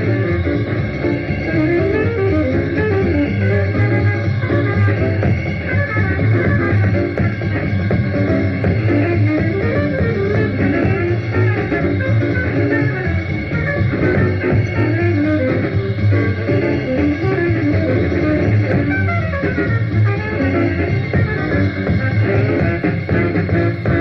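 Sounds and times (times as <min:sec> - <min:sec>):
bass: 0:00.0 - 0:24.0
drums: 0:00.0 - 0:24.0
small-group jazz on radio: 0:00.0 - 0:24.0
tenor saxophone: 0:00.0 - 0:24.0
trumpet: 0:00.0 - 0:24.0.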